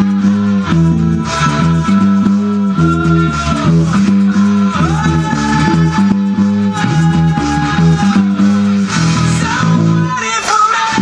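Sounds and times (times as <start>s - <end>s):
electric bass guitar riff: 0.0s - 11.0s
electric guitars: 0.0s - 11.0s.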